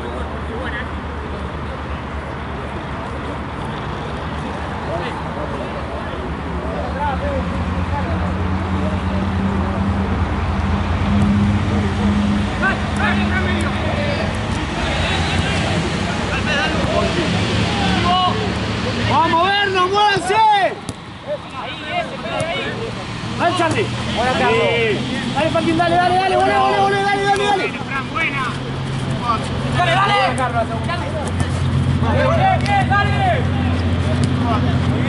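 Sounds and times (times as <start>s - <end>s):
players shouting: 11.9s - 35.0s.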